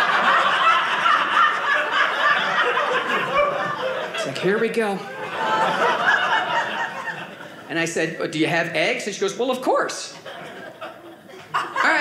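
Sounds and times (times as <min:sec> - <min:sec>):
audience laughing: 0:00.0 - 0:07.7, 0:10.1 - 0:12.0.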